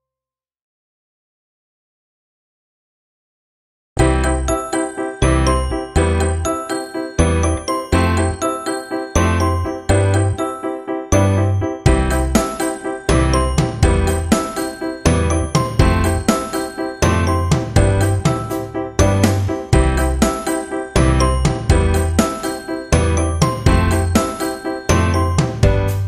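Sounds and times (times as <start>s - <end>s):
plucked chiming melody: 4.0s - 26.0s
repeating bass note: 17.0s - 20.3s, 21.0s - 22.2s.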